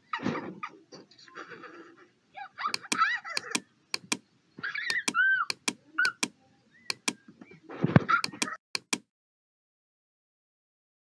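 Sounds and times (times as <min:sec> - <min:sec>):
high squeaky chirps: 0:02.6 - 0:08.6
computer mouse clicking: 0:02.8 - 0:04.2, 0:04.9 - 0:06.3, 0:06.9 - 0:07.2, 0:08.2 - 0:09.1.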